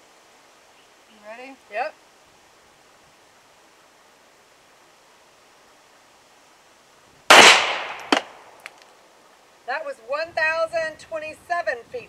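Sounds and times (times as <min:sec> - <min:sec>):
faint outdoor background: 0:00.0 - 0:12.0
pistol shot with echo: 0:07.3 - 0:08.5.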